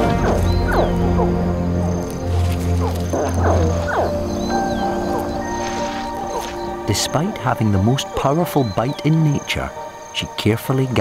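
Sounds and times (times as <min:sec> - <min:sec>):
background music of held notes: 0:00.0 - 0:11.0
crocodile hatchlings chirping: 0:02.8 - 0:07.0.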